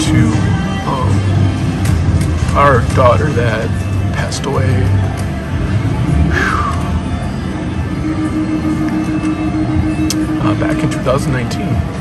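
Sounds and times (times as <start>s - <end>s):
held tone: 6.8s - 11.2s
gaming machine music and tones: 6.9s - 12.0s.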